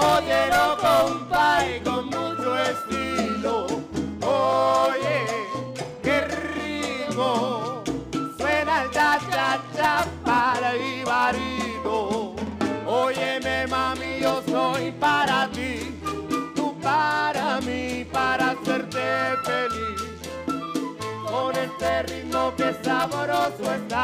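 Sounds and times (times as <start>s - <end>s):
flute melody: 0.0s - 13.1s, 15.8s - 17.6s, 18.2s - 23.4s
bass line: 0.0s - 18.3s
conga and timbales percussion: 0.0s - 24.0s
salsa band playing: 0.0s - 24.0s.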